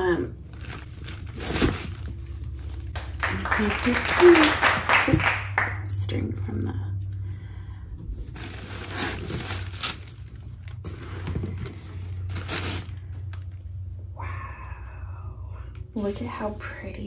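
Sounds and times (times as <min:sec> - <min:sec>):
low steady hum: 0:00.0 - 0:17.0
cloth bag rustling: 0:08.3 - 0:13.1.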